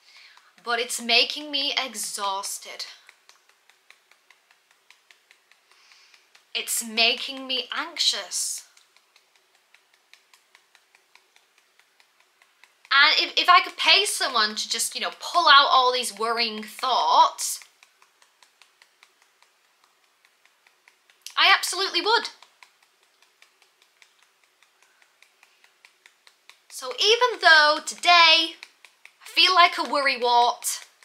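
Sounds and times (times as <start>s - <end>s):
fingertips tapping on hand: 0.0s - 31.0s.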